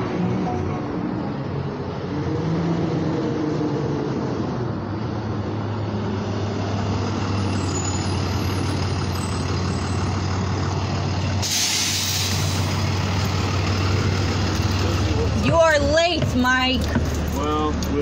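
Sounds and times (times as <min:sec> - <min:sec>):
heavy vehicle engine drone: 0:00.0 - 0:18.0
loud hiss: 0:11.4 - 0:12.8.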